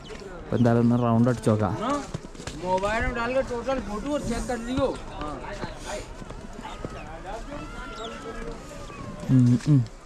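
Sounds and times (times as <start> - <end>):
distant people talking: 0.0 - 10.0
footsteps on slushy snow: 0.0 - 10.0.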